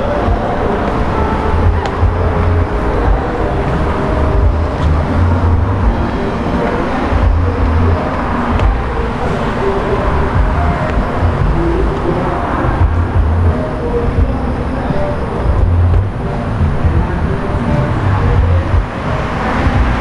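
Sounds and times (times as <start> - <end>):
road traffic rumble: 0.0 - 20.0.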